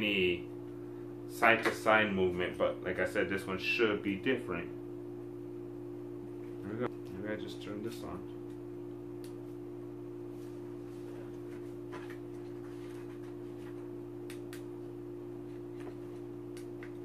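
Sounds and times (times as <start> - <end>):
steady low two-tone hum: 0.0 - 17.0.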